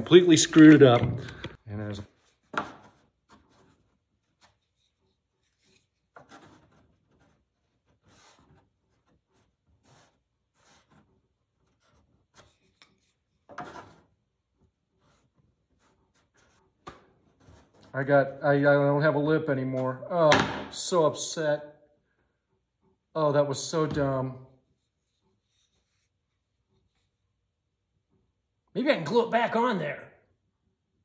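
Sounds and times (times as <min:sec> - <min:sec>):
wooden piece knocking and rubbing: 0:00.3 - 0:01.6.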